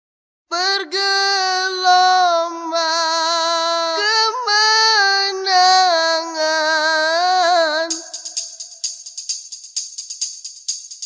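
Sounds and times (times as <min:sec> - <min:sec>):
woman singing unaccompanied: 0:00.5 - 0:08.3
tambourine: 0:07.2 - 0:11.0.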